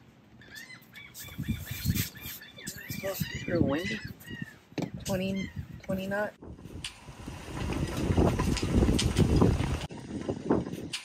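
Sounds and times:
wind rushing across microphone: 0:01.2 - 0:11.0.

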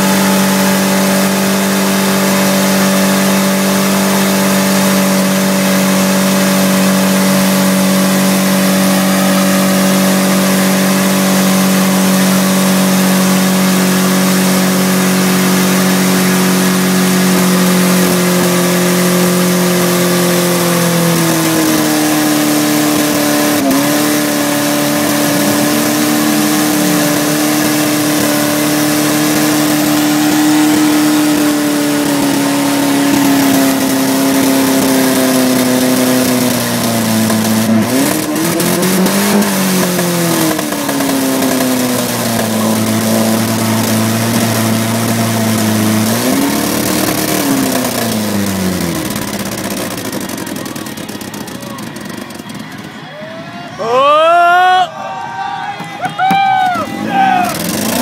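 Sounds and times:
car engine revving: 0:00.0 - 0:53.1, 0:56.2 - 0:58.0.

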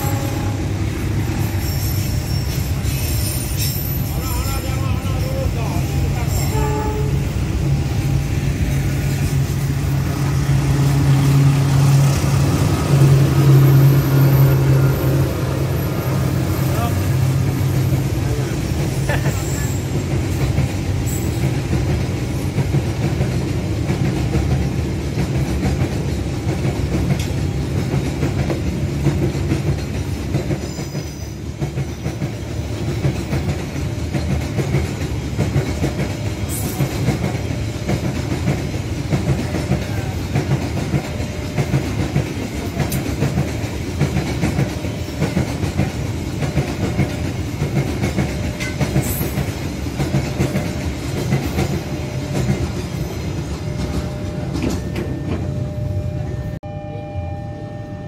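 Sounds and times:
train wheels rumbling on rails: 0:00.0 - 0:56.6.

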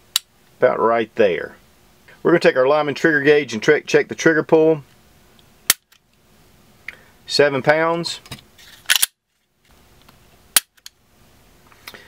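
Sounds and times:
pistol mechanical clicks: 0:08.9 - 0:09.2, 0:10.6 - 0:11.0.

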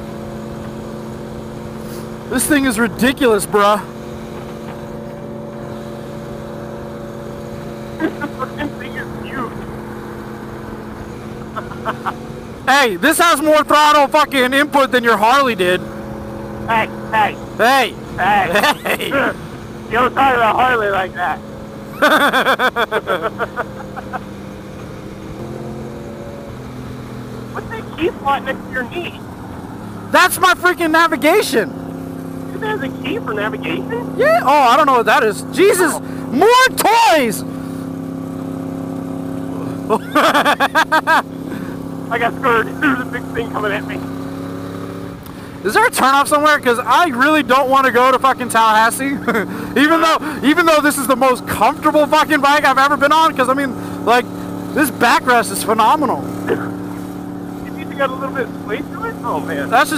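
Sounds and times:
motorcycle engine cruising: 0:00.0 - 0:59.9
wind and road noise: 0:00.0 - 0:59.9.

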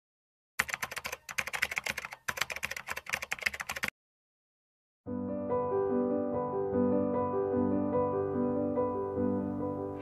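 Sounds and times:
keyboard typing clicks: 0:00.6 - 0:03.9.

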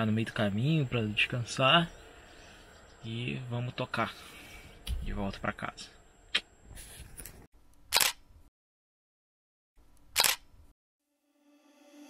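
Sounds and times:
camera shutter clicks: 0:07.9 - 0:08.2, 0:10.1 - 0:10.5.

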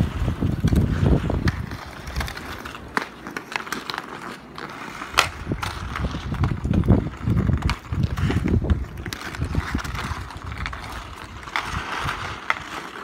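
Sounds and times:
hockey sticks hitting puck: 0:00.0 - 0:13.0
ice skates scraping: 0:00.0 - 0:13.0.

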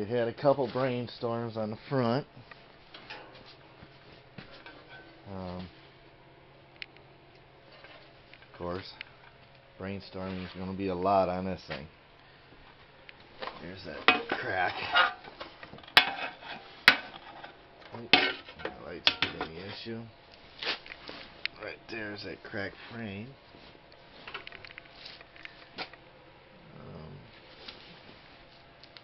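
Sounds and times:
faint low hum: 0:00.0 - 0:29.0.

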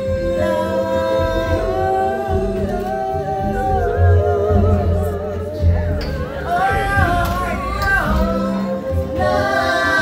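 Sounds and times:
live band bass accompaniment: 0:00.0 - 0:10.0.

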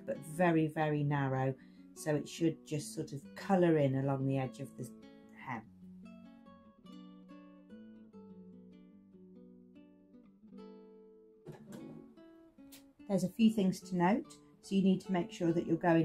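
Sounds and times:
plucked acoustic guitar: 0:04.8 - 0:13.2.

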